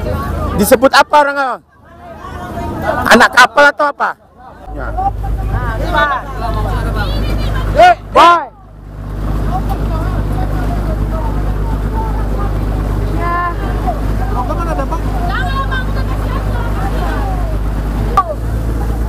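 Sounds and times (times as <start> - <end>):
boat engine humming: 0.0 - 19.0
shouted voices: 9.6 - 17.6.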